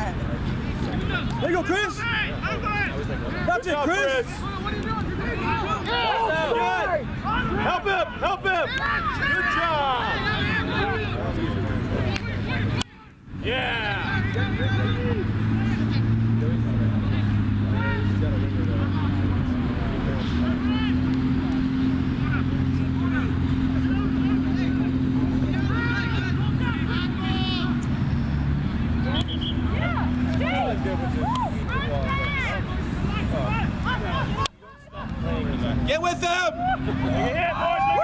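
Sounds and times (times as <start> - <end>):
vehicle engine droning: 0.0 - 38.0
distant shouts of players: 1.0 - 19.2, 20.4 - 27.9, 29.0 - 38.0.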